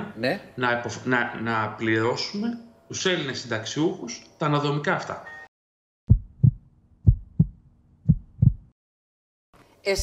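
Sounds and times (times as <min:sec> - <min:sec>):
heartbeat thumps: 0:06.1 - 0:08.8.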